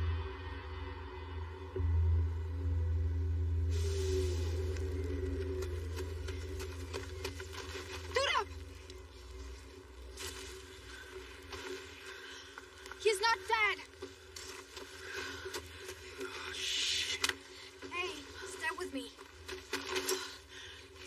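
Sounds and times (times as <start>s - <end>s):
steady low drone: 0.0s - 13.0s.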